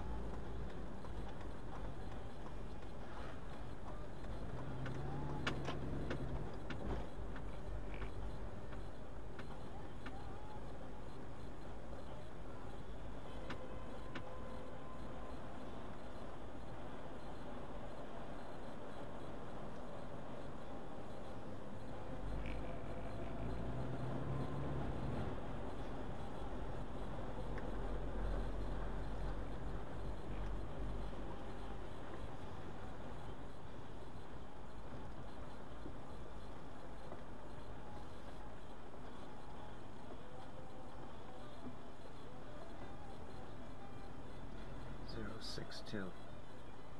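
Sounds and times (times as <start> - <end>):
road noise inside car: 0.0 - 46.9.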